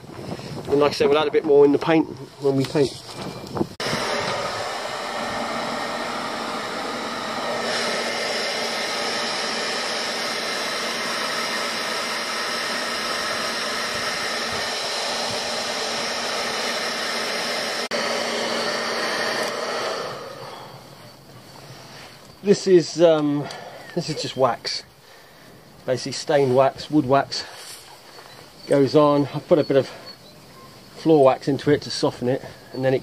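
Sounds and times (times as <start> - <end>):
electric blower fan whirring: 0.0 - 30.2.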